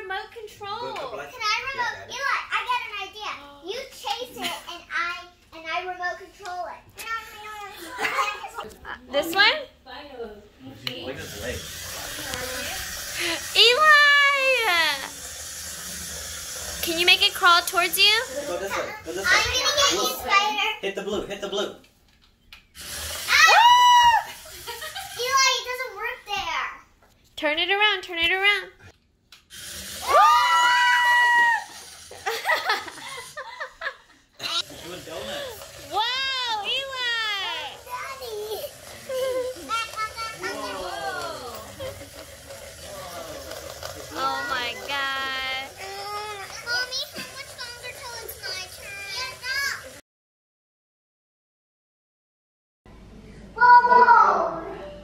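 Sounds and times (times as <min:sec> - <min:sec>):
child screaming: 0:23.2 - 0:24.4, 0:30.0 - 0:31.8, 0:53.6 - 0:54.7
children's high-pitched voices: 0:35.8 - 0:41.9, 0:44.1 - 0:50.0, 0:53.6 - 0:54.9.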